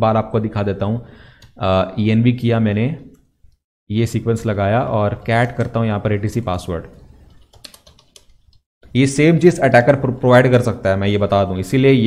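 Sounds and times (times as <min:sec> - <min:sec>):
computer keyboard typing: 0:06.9 - 0:08.6.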